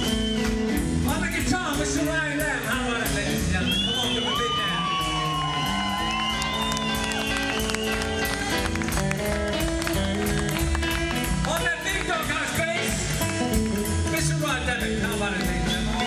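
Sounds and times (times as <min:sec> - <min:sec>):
blues band playing: 0:00.0 - 0:16.0
crowd noise: 0:00.0 - 0:16.0.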